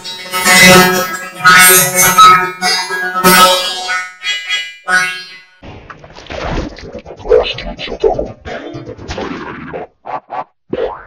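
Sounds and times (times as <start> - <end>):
jumble of distorted sound: 5.6 - 11.0.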